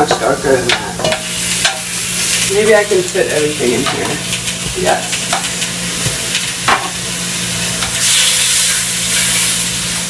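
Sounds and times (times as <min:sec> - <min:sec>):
meat sizzling in a hot pot: 0:00.0 - 0:10.0.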